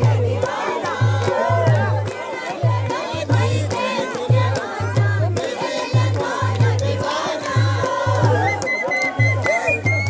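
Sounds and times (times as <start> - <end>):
crowd singing and shouting: 0.0 - 10.0
deep repeating drum beat: 0.0 - 10.0.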